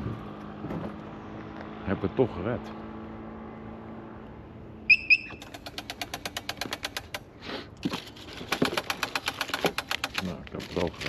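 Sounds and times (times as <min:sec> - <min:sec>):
short high beeps: 0:04.9 - 0:05.4
rapid even ticking: 0:05.4 - 0:07.2.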